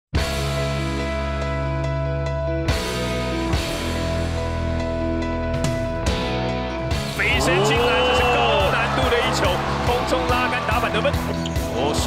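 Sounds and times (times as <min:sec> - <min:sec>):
rock music: 0:00.1 - 0:12.0
crowd noise: 0:07.3 - 0:12.0.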